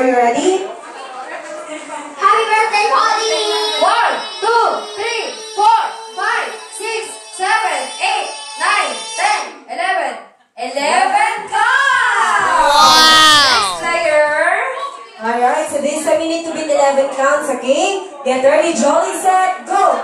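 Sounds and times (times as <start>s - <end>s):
boy singing into a microphone: 12.6s - 13.9s.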